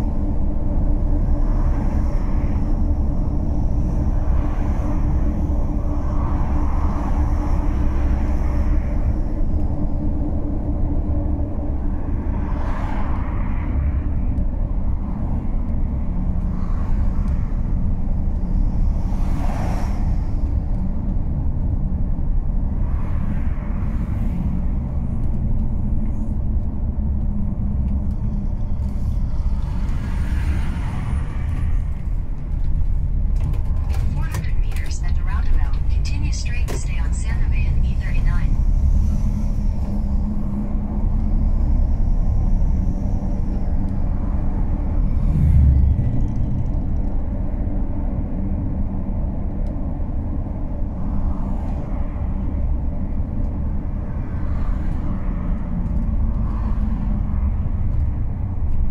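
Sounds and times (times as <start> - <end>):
vehicle engine and road rumble: 0.0 - 58.9.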